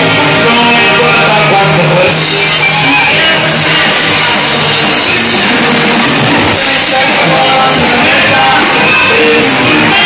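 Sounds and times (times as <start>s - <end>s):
drums: 0.0s - 10.0s
live band music: 0.0s - 10.0s
strummed guitar: 0.0s - 10.0s
tuba bass notes: 0.0s - 10.0s.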